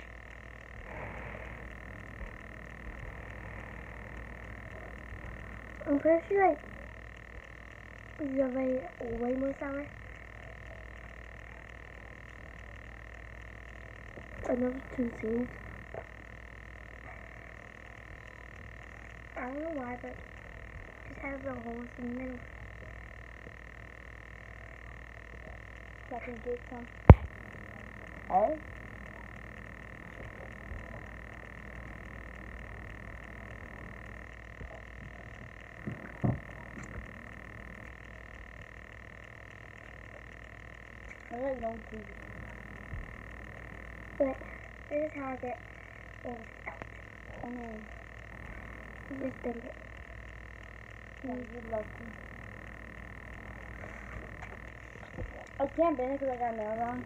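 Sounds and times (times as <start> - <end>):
faint high-pitched drone: 0.0 - 57.0
low hum: 0.0 - 57.0.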